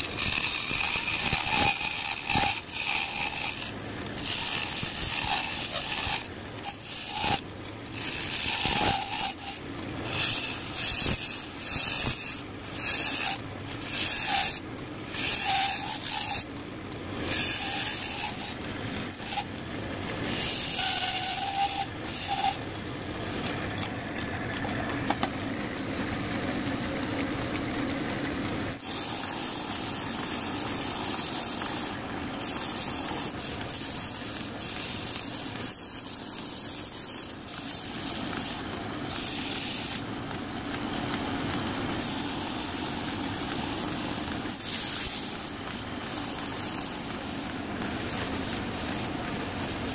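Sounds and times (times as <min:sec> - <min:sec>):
sandpaper hissing on spinning wood: 0:00.0 - 0:23.6, 0:28.8 - 0:49.9
chisel scraping spinning wood: 0:00.0 - 0:25.4, 0:26.2 - 0:49.9.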